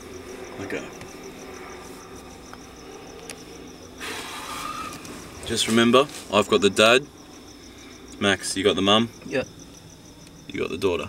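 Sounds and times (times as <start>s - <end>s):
crickets chirping: 0.0s - 11.0s
faint low hum: 0.0s - 11.0s.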